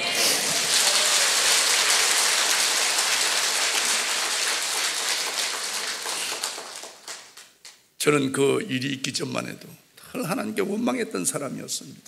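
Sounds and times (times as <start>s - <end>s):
crowd applauding: 0.0s - 7.8s.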